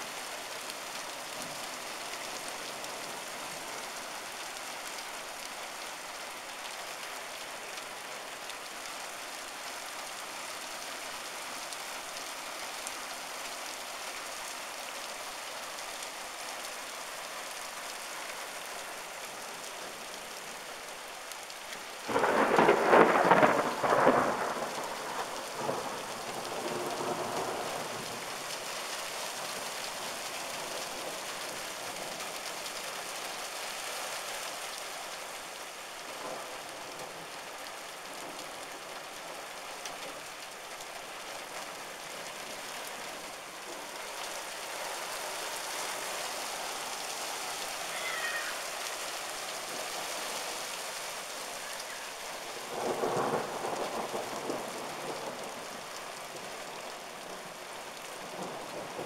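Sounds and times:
heavy rain and hail on cars: 0.0 - 59.0
thunder clap rumbling: 22.1 - 27.6.

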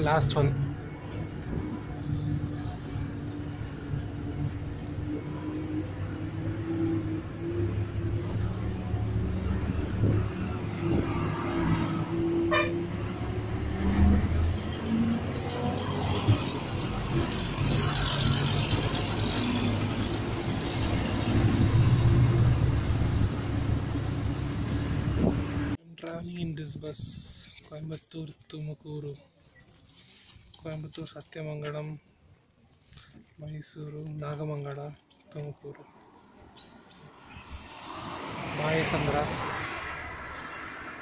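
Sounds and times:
bus diesel engine under load: 0.0 - 25.8
road and body noise: 0.0 - 41.0
vehicle horns tooting: 12.4 - 13.0.

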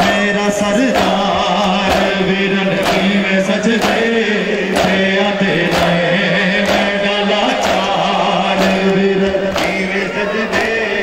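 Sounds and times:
chest-beating slaps: 0.0 - 10.8
man chanting a lament: 0.0 - 11.0.

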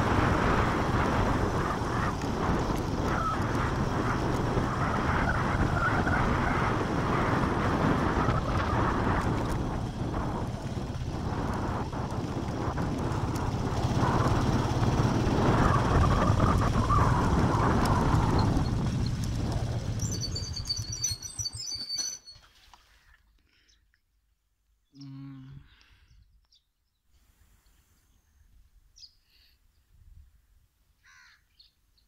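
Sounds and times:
small motorcycle engine running: 0.0 - 22.0
wind noise on microphone: 0.0 - 22.0, 29.8 - 30.6
birds chirping: 18.2 - 22.6, 24.8 - 27.1.

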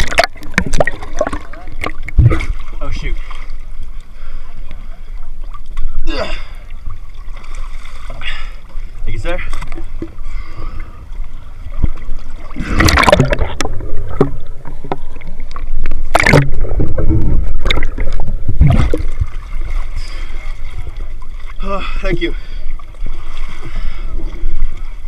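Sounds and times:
water sloshing and splashing: 0.0 - 25.0
steady low rumble: 8.8 - 21.4
loud splashes: 12.5 - 13.7.

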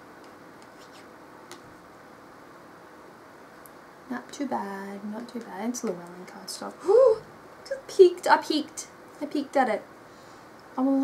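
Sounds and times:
steady low hiss: 0.0 - 11.0.

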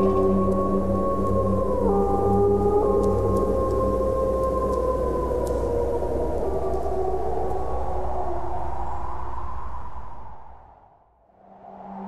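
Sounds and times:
wolves howling: 0.0 - 9.2
low steady drone: 0.0 - 10.5.

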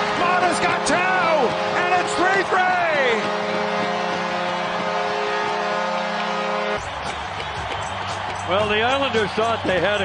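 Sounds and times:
arena goal horn: 0.0 - 6.8
crowd cheering: 0.0 - 10.0.

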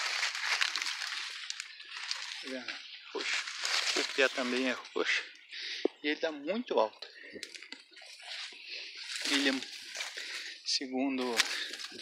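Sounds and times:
corn leaves rustling: 0.0 - 4.8, 8.2 - 12.0.

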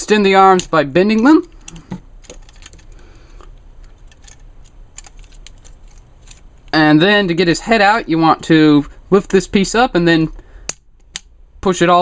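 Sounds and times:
plastic toy joints clicking: 3.8 - 6.4.

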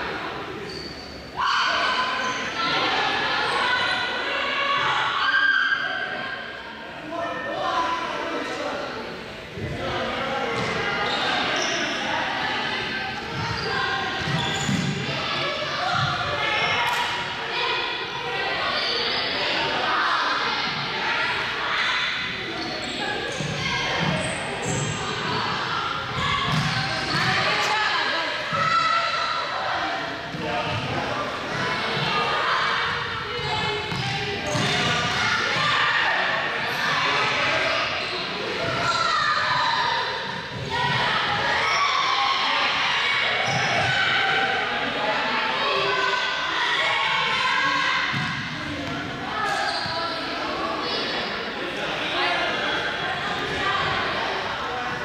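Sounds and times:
indistinct chatter echoing: 0.0 - 55.0
balls bouncing on hard floor: 26.5 - 27.3, 33.9 - 35.7.

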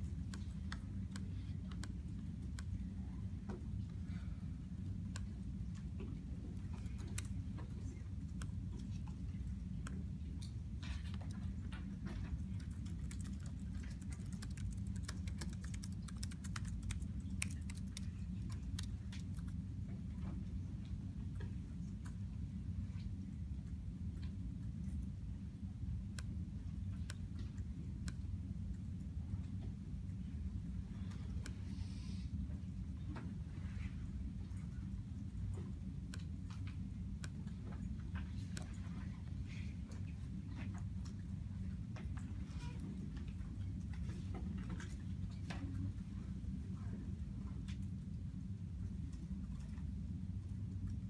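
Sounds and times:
steady low hum: 0.0 - 51.0
laptop keyboard typing: 12.3 - 19.6.

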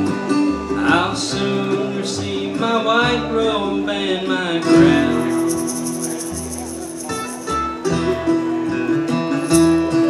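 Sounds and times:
bluegrass band playing: 0.0 - 10.0.

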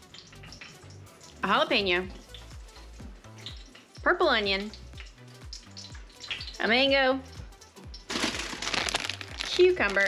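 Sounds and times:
background music: 0.0 - 10.0
plastic bag crinkling: 8.1 - 10.0.

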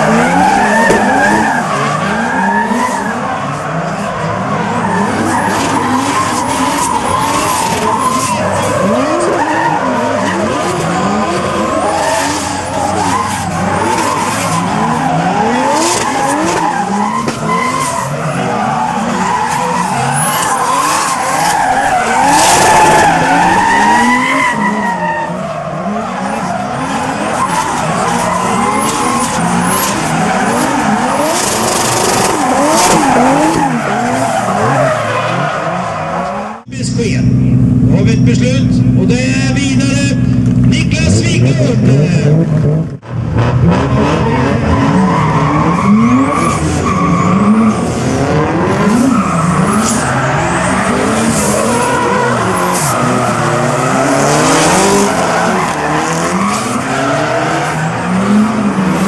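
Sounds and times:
tyres squealing on asphalt: 0.0 - 36.9, 43.8 - 59.0
car engines revving: 0.0 - 59.0.

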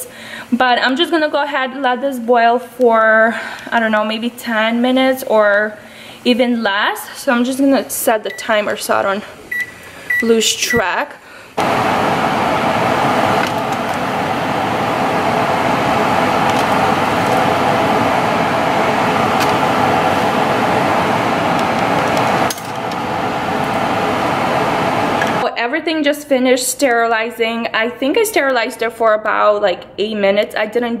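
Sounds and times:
water boiling and bubbling: 11.6 - 25.4.

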